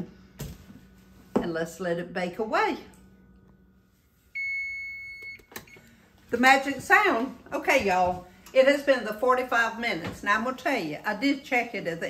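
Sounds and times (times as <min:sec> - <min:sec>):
oven timer beeping: 0:04.4 - 0:06.0.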